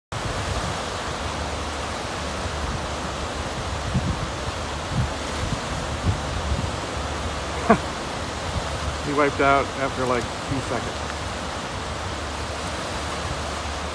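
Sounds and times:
lake surf breaking on shore: 0:00.1 - 0:13.9
wind gusting on microphone: 0:00.1 - 0:13.9.

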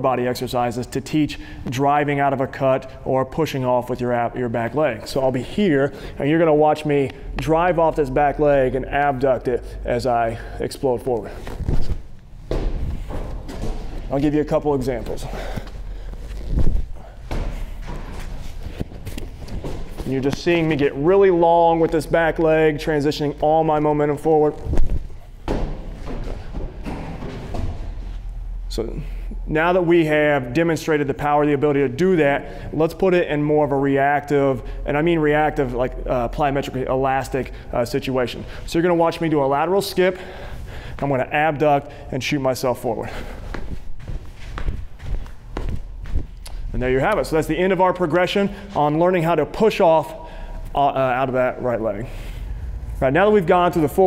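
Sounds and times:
medicine ball thudding: 0:11.6 - 0:14.1, 0:17.2 - 0:20.1, 0:25.4 - 0:28.0
footsteps on artificial turf: 0:43.0 - 0:47.3.

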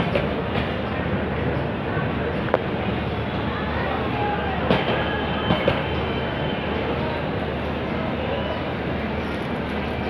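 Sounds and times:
train wheels rolling on rails: 0:00.0 - 0:10.0.

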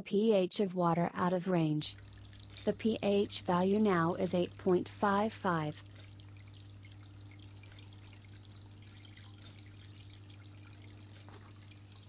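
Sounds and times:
low steady hum: 0:01.7 - 0:12.0
water trickling and dripping: 0:01.9 - 0:12.0.

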